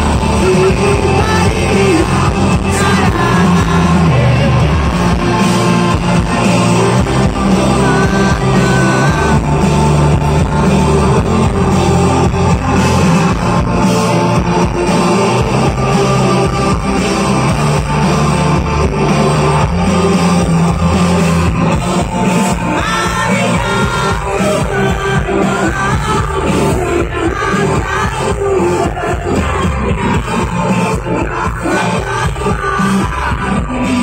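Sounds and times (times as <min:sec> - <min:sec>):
bass guitar: 0:00.0 - 0:34.0
drums: 0:00.0 - 0:34.0
electric guitars: 0:00.0 - 0:34.0
person singing: 0:00.0 - 0:34.0.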